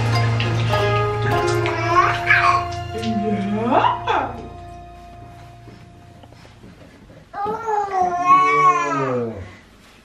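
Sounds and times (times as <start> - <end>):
background music: 0.0 - 6.6
baby crying: 1.5 - 2.8, 7.4 - 9.4.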